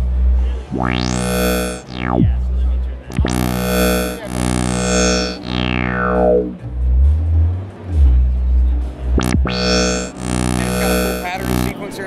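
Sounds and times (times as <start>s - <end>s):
synthesizer deep bass notes: 0.0s - 7.2s, 9.1s - 11.9s.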